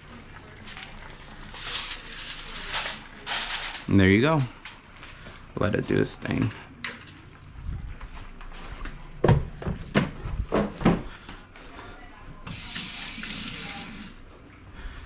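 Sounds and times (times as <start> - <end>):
faucet running into steel sink: 12.5 - 14.2.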